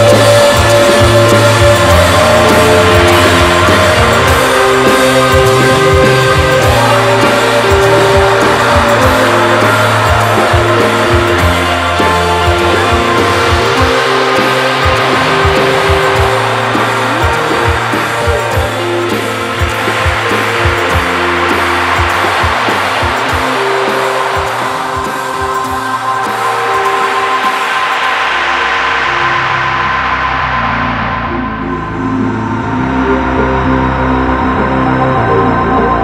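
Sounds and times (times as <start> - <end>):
rock band music: 0.0 - 36.0.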